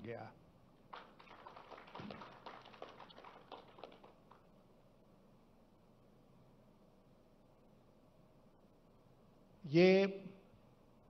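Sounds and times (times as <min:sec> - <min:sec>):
audience clapping unevenly: 0:00.8 - 0:04.6.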